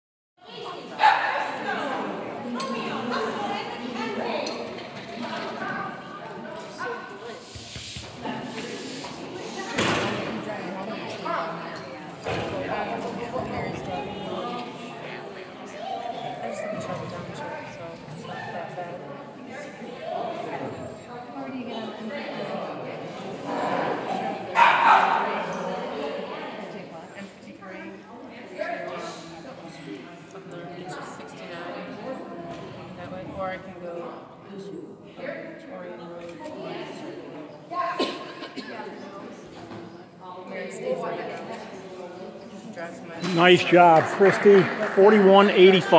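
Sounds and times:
small dog barking: 24.6s - 25.2s.

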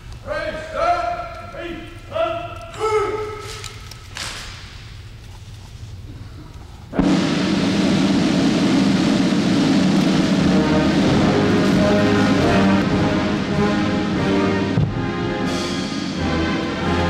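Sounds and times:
band music: 7.0s - 17.0s.

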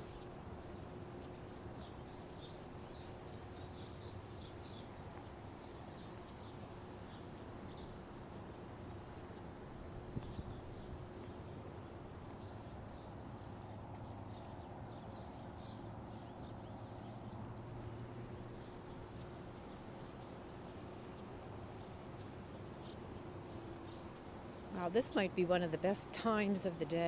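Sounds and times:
small birds chirping: 0.0s - 8.0s, 10.2s - 25.4s
steady background hiss: 16.6s - 27.0s.

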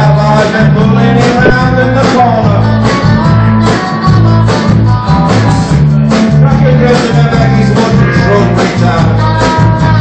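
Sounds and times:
bass line: 0.0s - 10.0s
drum kit beat: 0.0s - 10.0s
electric guitars: 0.0s - 10.0s.

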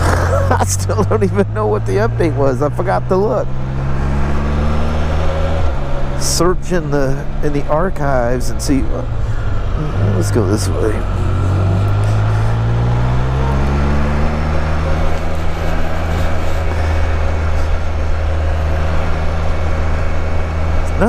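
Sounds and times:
trike engine accelerating: 0.0s - 21.0s.

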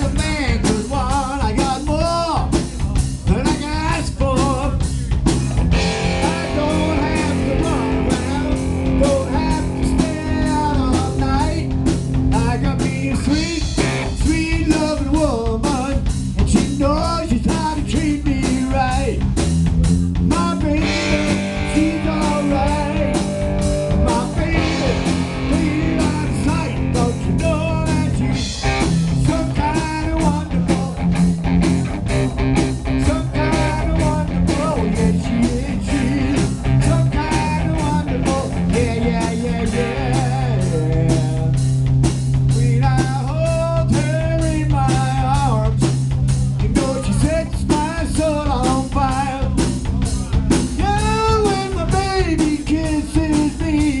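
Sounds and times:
bass guitar: 0.0s - 54.0s
drum kit beat: 0.0s - 54.0s
electric guitar: 0.0s - 54.0s.

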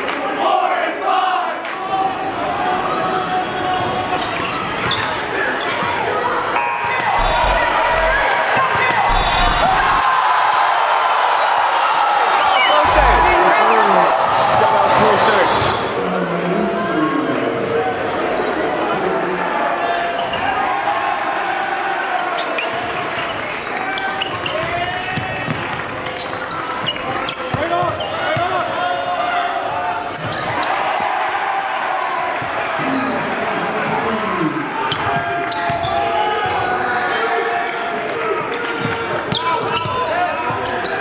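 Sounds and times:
overlapping voices: 12.6s - 16.4s.

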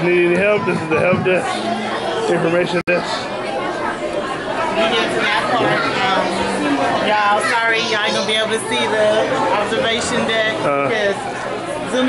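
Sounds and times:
people chattering indoors: 0.0s - 12.0s.

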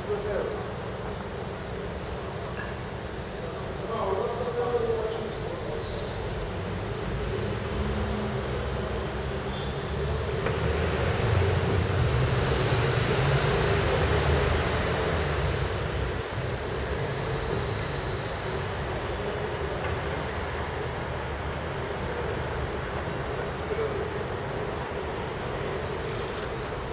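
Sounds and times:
city street background noise: 0.0s - 26.9s.

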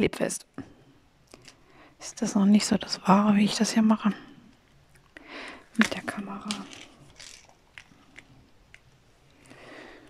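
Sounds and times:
soft rustle: 0.6s - 10.0s.

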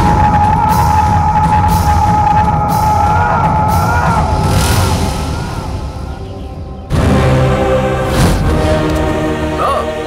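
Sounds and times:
dramatic orchestral film score: 0.0s - 10.0s.

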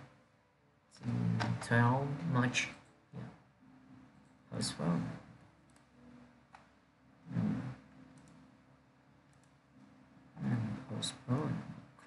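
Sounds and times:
person murmuring: 1.0s - 1.7s, 7.3s - 7.8s, 10.4s - 11.8s.

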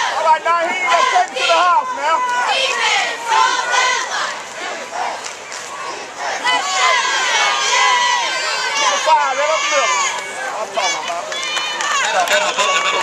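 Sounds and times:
crowd shouting and yelling: 0.0s - 13.0s.

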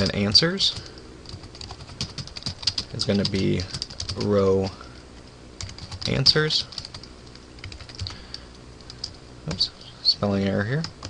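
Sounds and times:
computer keyboard keystrokes: 1.3s - 4.3s, 5.6s - 9.2s.

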